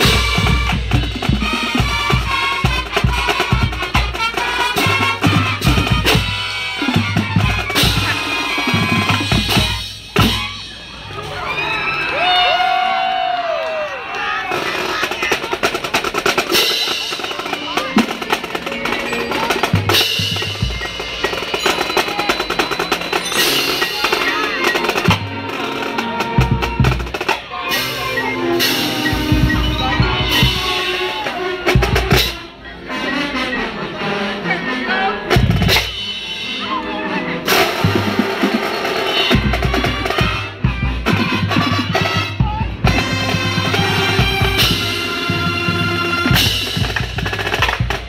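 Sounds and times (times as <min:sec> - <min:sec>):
snare drum rolls and rimshots: 0:00.0 - 0:11.4, 0:14.4 - 0:32.5, 0:37.4 - 0:48.0
marching band music: 0:00.0 - 0:12.6, 0:14.1 - 0:48.0.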